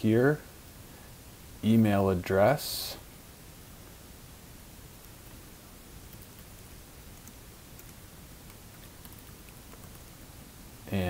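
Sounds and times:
microphone hiss: 0.0 - 11.0.

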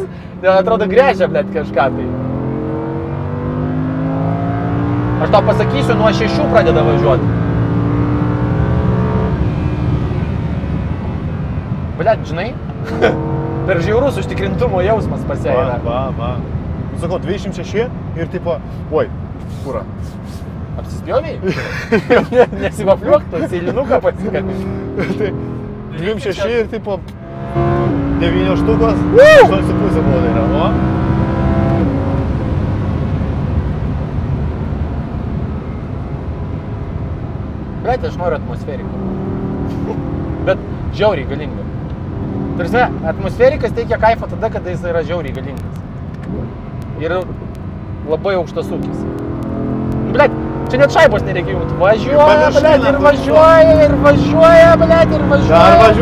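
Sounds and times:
high-revving car engine: 0.0 - 12.0, 12.6 - 17.6, 23.0 - 56.0
low engine and road rumble: 0.0 - 56.0
tyre and road rumble: 38.6 - 56.0.

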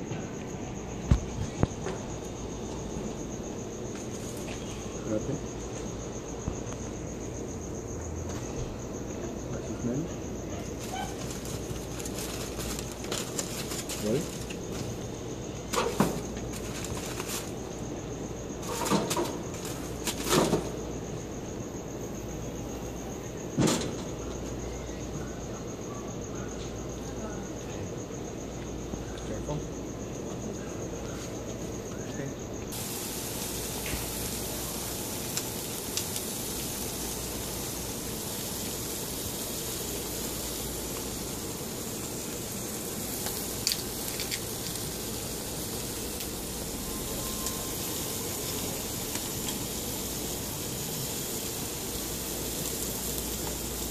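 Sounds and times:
cricket chirping: 0.0 - 53.9
foil packets crinkling on a grill: 10.6 - 18.0, 18.6 - 20.7, 32.7 - 53.9
metal grill lid shutting: 18.7 - 19.4.

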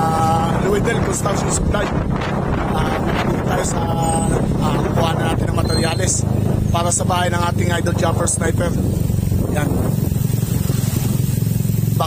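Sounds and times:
small motorcycle engine puttering: 4.0 - 12.0.

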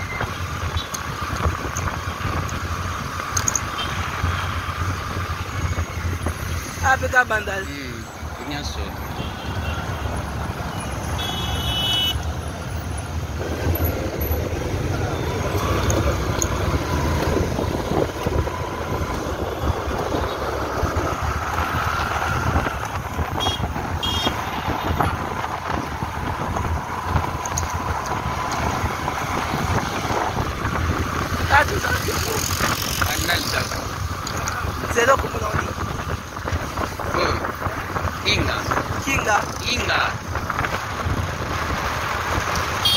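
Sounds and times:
wind buffeting microphone: 13.1 - 42.8.

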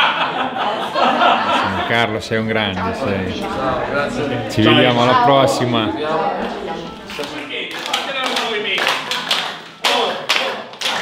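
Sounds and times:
voices: 0.6 - 8.8
slow hand claps: 7.1 - 11.0.

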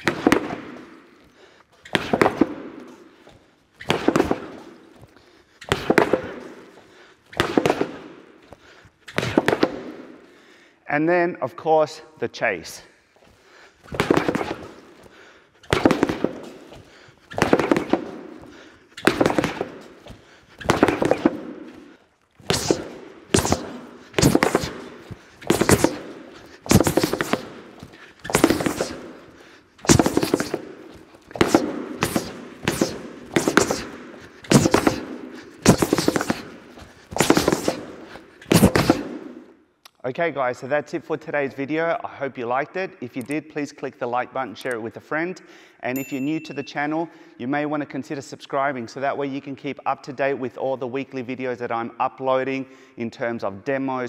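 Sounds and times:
gloved fists punching rubber pad: 0.0 - 0.9, 1.8 - 2.9, 3.8 - 6.6, 7.3 - 8.2, 9.1 - 10.1, 13.9 - 21.8, 22.4 - 39.4.

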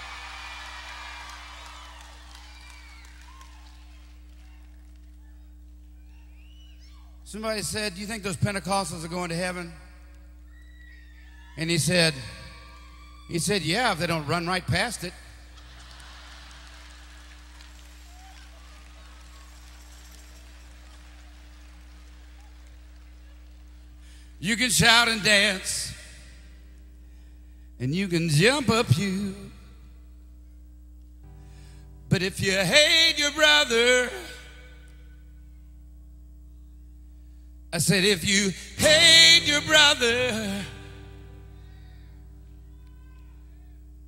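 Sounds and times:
low steady hum: 0.0 - 44.0
audience laughter and murmur: 15.5 - 24.0.

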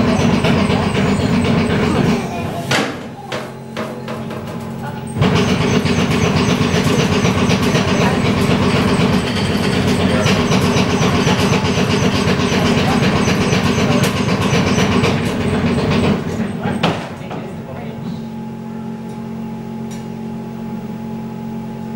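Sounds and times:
earthquake simulator rumble: 0.0 - 3.6, 4.4 - 19.0
constant rattling: 4.0 - 17.7.

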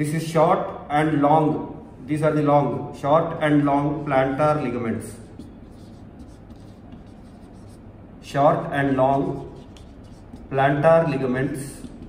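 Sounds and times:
marker writing on whiteboard: 3.2 - 7.9, 8.6 - 12.0.

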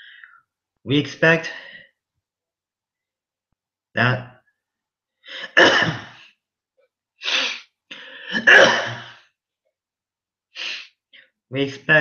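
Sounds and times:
man's sharp breath: 7.2 - 8.4, 10.6 - 11.3.

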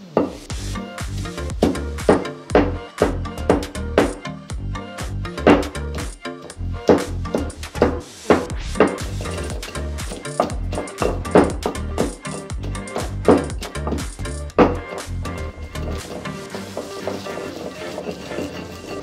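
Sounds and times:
background music: 0.0 - 19.0
pestle pounding in stone mortar: 1.4 - 4.3, 5.4 - 6.2, 6.9 - 15.2.

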